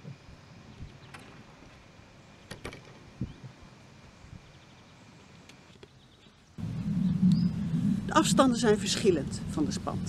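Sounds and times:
low steady rumble: 6.6 - 10.0.

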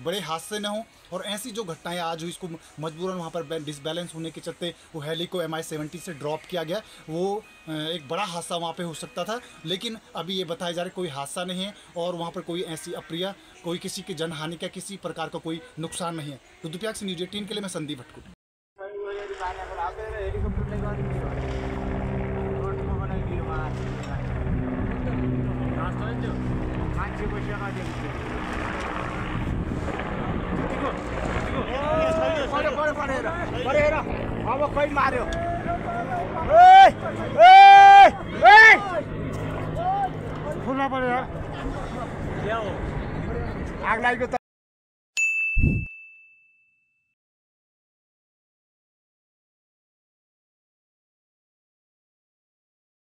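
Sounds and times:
people talking: 18.8 - 21.6, 22.4 - 24.4, 30.6 - 37.4
helicopter rotor and engines droning: 19.5 - 44.4
high ding tone: 45.2 - 47.1.

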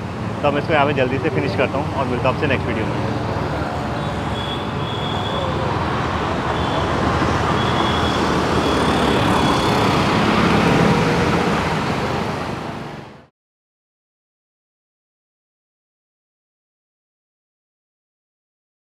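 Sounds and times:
busy street traffic passing: 0.0 - 13.3.

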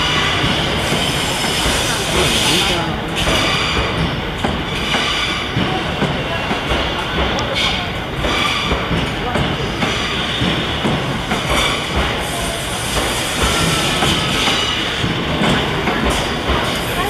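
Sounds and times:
train wheels knocking over rail joints: 0.0 - 17.0.

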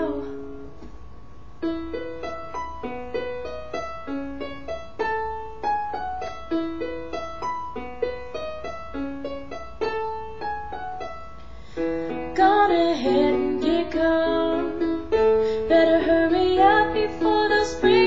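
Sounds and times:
keyboard piano broken chords: 1.6 - 18.0.

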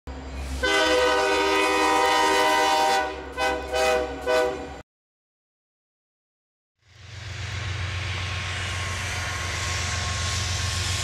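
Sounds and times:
locomotive air horn blasts: 0.6 - 4.8.

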